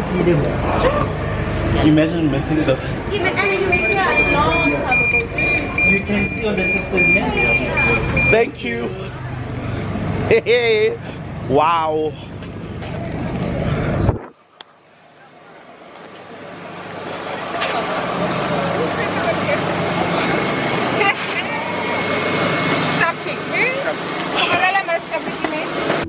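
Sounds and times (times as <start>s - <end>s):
scattered voices: 0.0s - 14.4s, 15.1s - 26.0s
steady hum: 0.0s - 26.0s.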